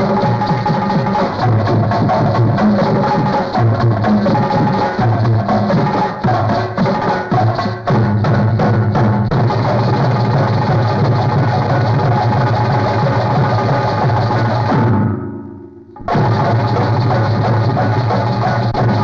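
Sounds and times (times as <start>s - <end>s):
drum-led dance music: 0.0s - 15.2s, 15.9s - 19.0s.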